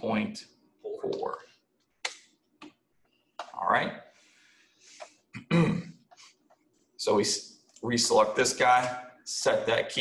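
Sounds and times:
soft breath: 0:04.1 - 0:05.2
man clearing his throat: 0:05.4 - 0:06.0.

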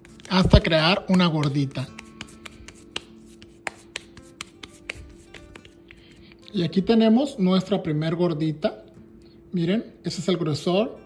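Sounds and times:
soft slaps of dough: 0:00.0 - 0:06.0.

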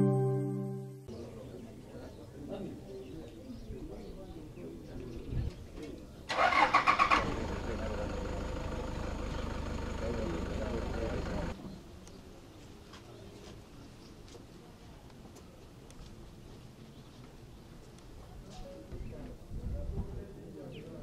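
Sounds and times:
faint voices murmuring: 0:01.1 - 0:06.3, 0:09.0 - 0:21.0
vehicle engine cranking and running: 0:06.3 - 0:11.6.

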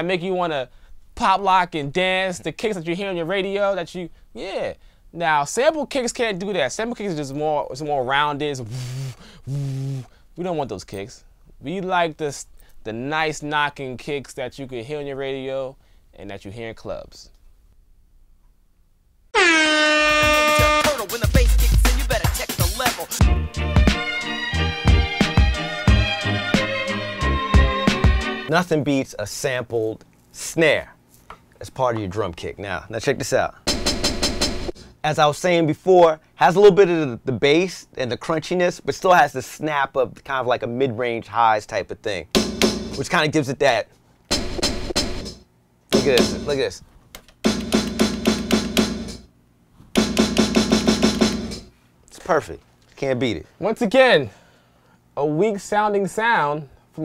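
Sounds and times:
air horn sound effect: 0:19.3 - 0:21.2
hip-hop beat with heavy bass: 0:20.0 - 0:28.5, 0:46.0 - 0:46.6, 0:47.5 - 0:49.2
sampled snare drum hits: 0:42.4 - 0:43.0, 0:44.3 - 0:46.6, 0:47.4 - 0:49.3, 0:50.0 - 0:51.7.

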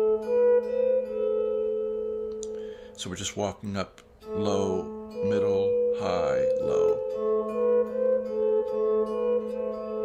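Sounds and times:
electric guitar picking melody notes: 0:00.0 - 0:10.0.

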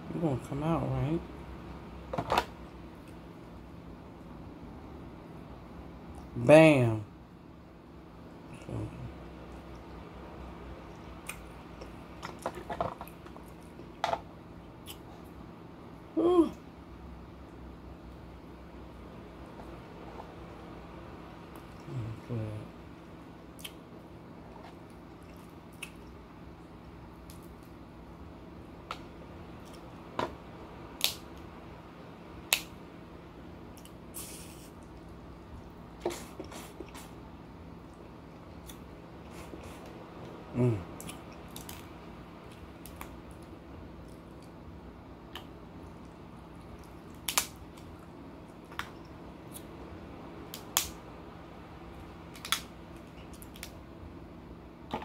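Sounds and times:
soft chewing: 0:10.8 - 0:15.4, 0:21.4 - 0:22.3, 0:23.5 - 0:27.8, 0:29.5 - 0:30.0, 0:33.7 - 0:44.6, 0:45.2 - 0:49.8
short falling vocal sound: 0:16.2 - 0:16.6
crab shells cracking: 0:46.9 - 0:47.9, 0:52.3 - 0:52.7.

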